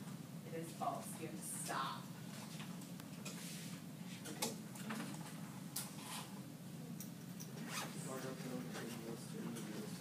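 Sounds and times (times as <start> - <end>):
soft murmured speech: 4.0 - 5.5, 6.7 - 10.0.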